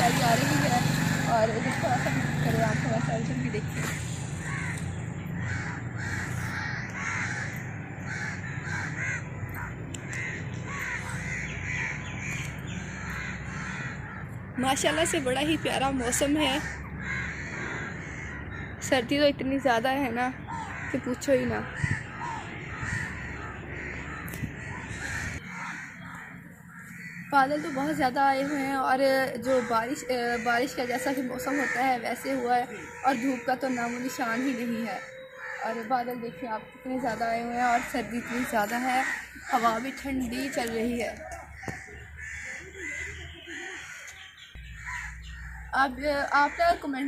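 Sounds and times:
birds cawing: 0.0s - 47.0s
wind rumble on microphone: 21.2s - 25.4s.

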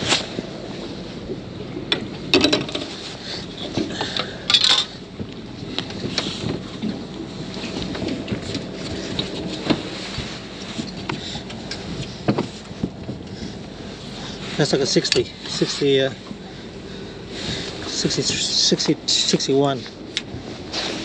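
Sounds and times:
fish handling knocks and scrapes: 1.3s - 13.5s
wind noise on microphone: 5.1s - 14.4s
rustling scrape: 8.8s - 11.1s, 20.5s - 21.0s.

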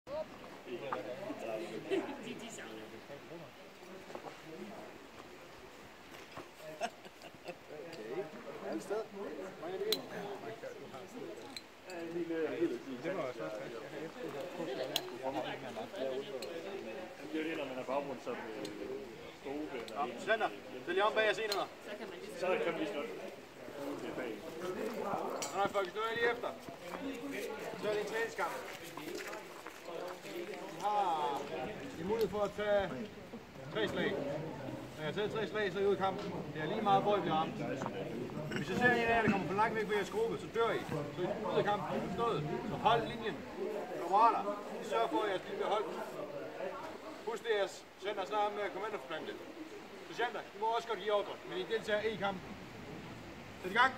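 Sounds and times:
indistinct talking: 0.1s - 53.9s.

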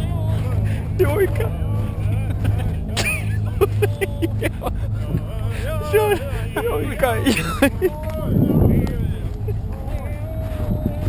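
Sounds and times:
low engine hum: 0.0s - 11.0s
people talking and calling: 0.0s - 11.0s.

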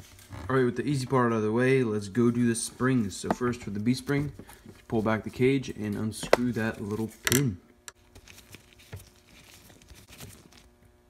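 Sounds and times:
rustle of gloves: 8.0s - 10.9s.

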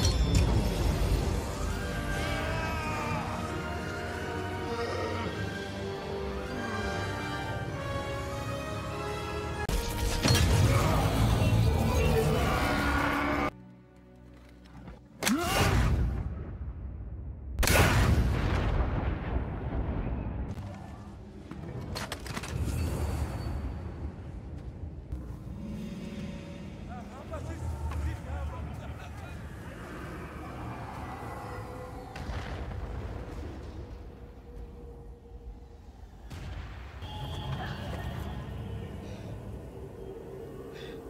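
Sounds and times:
film score music: 0.0s - 41.0s.

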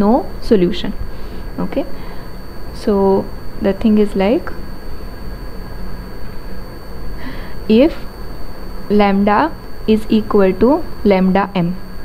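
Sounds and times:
faint high whine: 0.0s - 12.0s
low rumble and hiss: 0.0s - 12.0s.

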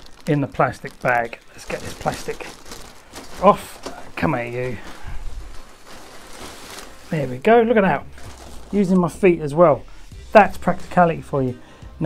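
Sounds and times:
plastic bag crinkling: 0.0s - 9.2s.

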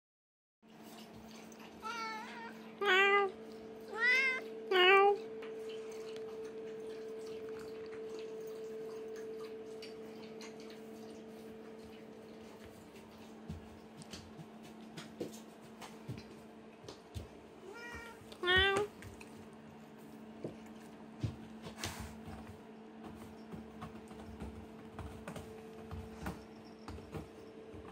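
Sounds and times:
electrical hum: 0.7s - 27.9s
cat meowing: 1.8s - 3.3s, 3.9s - 5.2s, 17.6s - 18.9s.

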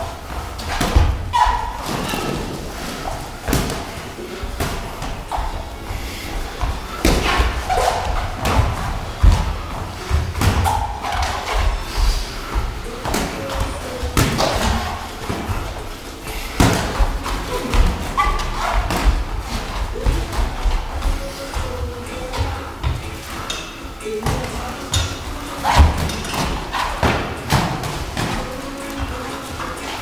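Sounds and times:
footwork on ring canvas: 0.0s - 30.0s.

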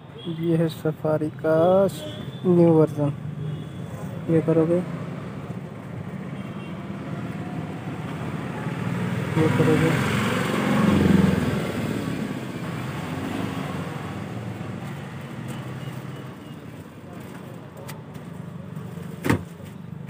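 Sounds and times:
road noise: 0.0s - 20.0s
vehicle passing: 4.1s - 16.4s.

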